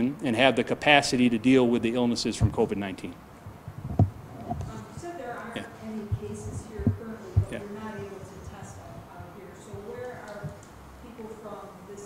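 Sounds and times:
faint low murmur: 0:00.0 - 0:12.0.

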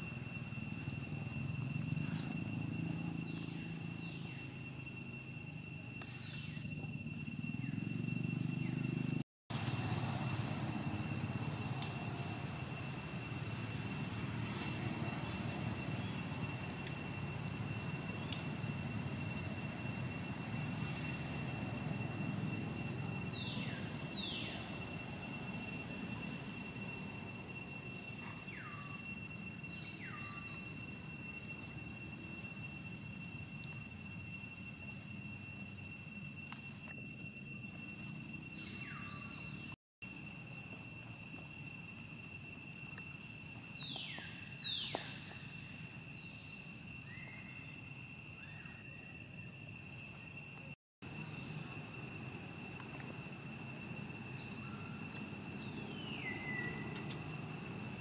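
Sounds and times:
high-pitched whine: 0:00.0 - 0:58.0.

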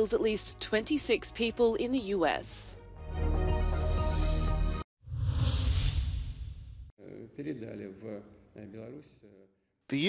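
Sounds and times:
transition whoosh: 0:05.0 - 0:06.9.

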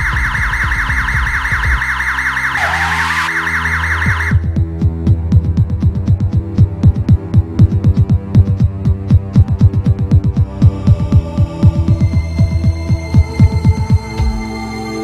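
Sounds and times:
electronic siren warbling: 0:00.0 - 0:04.5
dramatic background music: 0:00.0 - 0:15.0.

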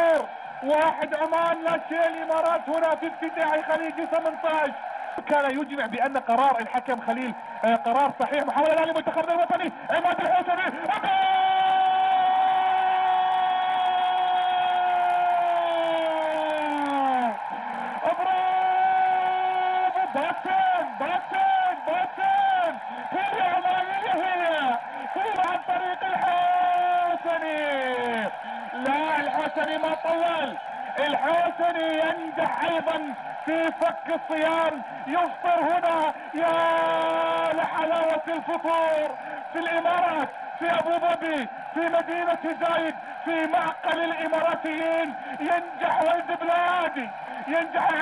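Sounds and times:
commentator's long excited shout: 0:00.0 - 0:48.0
commentator's rapid excited talk: 0:00.0 - 0:48.0.

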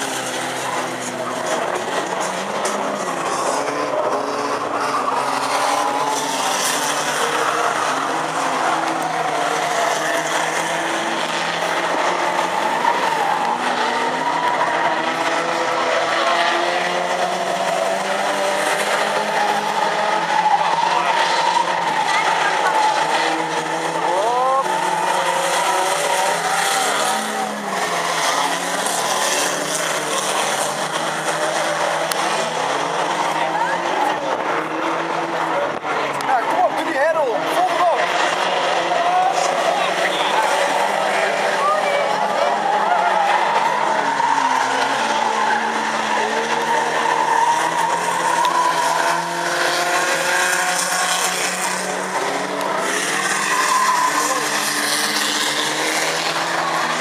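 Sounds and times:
car engines revving: 0:00.0 - 0:57.0.

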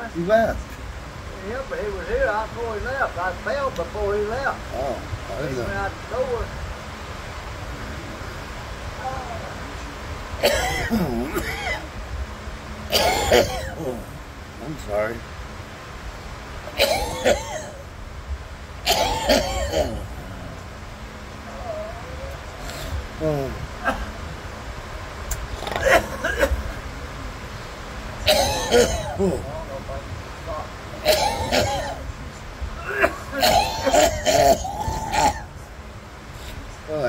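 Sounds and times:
man groaning: 0:04.7 - 0:05.7, 0:10.8 - 0:11.8, 0:13.2 - 0:14.2, 0:28.3 - 0:29.6
man coughing hard: 0:10.4 - 0:11.9, 0:12.9 - 0:14.1, 0:16.7 - 0:17.8, 0:18.9 - 0:20.2, 0:23.8 - 0:24.2, 0:25.6 - 0:26.8, 0:28.3 - 0:29.5, 0:31.0 - 0:32.0, 0:32.8 - 0:35.4.

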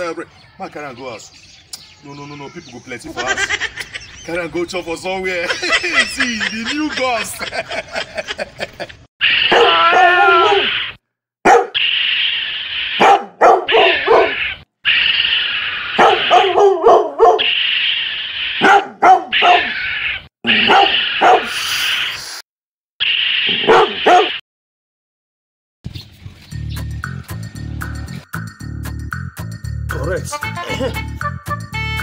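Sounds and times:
dog-like barking and whining: 0:09.3 - 0:11.8, 0:13.0 - 0:14.6, 0:15.9 - 0:17.6, 0:18.5 - 0:21.5, 0:23.5 - 0:24.4.

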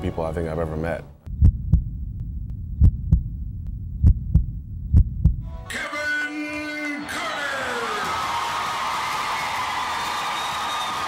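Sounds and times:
heartbeat thumps: 0:01.2 - 0:05.5
steady low hum: 0:01.2 - 0:05.6.

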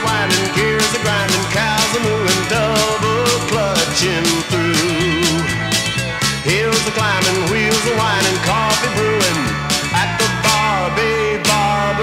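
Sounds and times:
regular drum beat: 0:00.0 - 0:10.8
bending lead melody line: 0:00.0 - 0:12.0
steady bass: 0:00.0 - 0:12.0.

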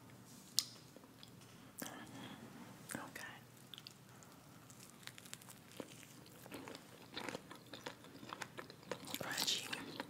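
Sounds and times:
chewing crunchy fried chicken: 0:03.6 - 0:10.0.

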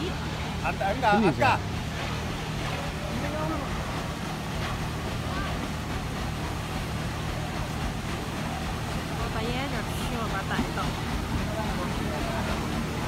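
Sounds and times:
boat engine humming: 0:00.0 - 0:13.0
faint voices: 0:00.0 - 0:13.0
water wash: 0:00.0 - 0:13.0.

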